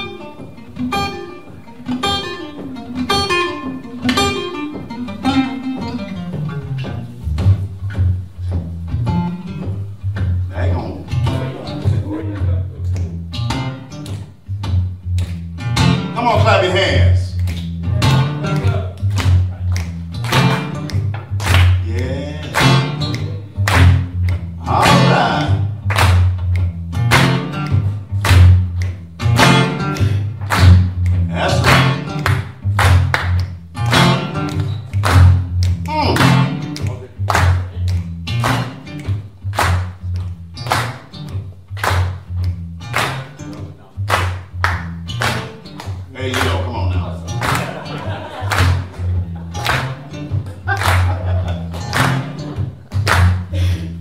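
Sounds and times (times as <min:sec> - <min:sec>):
bass guitar line: 0:00.0 - 0:54.0
hand claps: 0:00.0 - 0:54.0
man singing and calling out: 0:21.8 - 0:23.6, 0:24.6 - 0:25.8, 0:31.3 - 0:32.0, 0:35.8 - 0:37.3.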